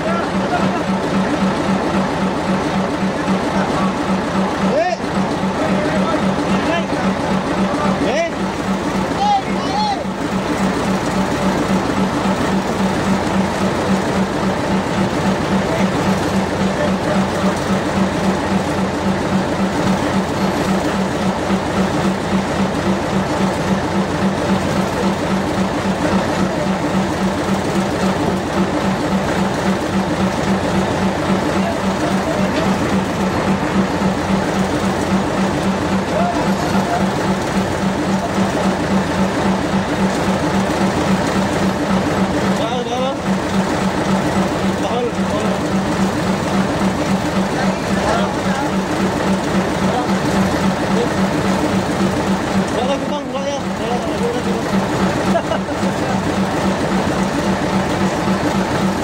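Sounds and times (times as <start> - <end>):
boat engine running: 0.0 - 59.0.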